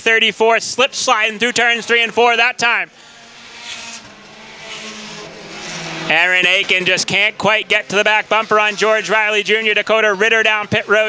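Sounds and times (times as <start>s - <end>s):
race car engines passing: 0.2s - 11.0s.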